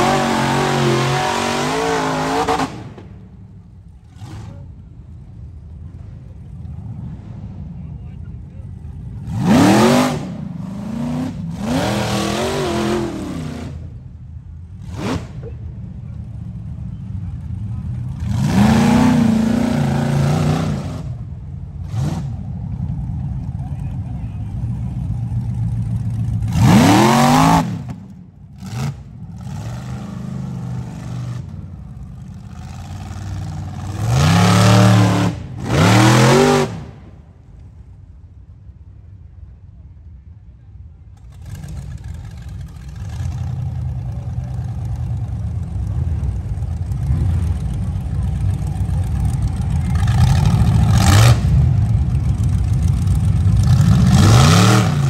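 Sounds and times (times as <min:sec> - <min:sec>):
buggy engines revving hard: 0:00.0 - 0:03.3, 0:09.0 - 0:15.8, 0:17.4 - 0:23.2, 0:24.5 - 0:37.2, 0:41.2 - 0:55.0.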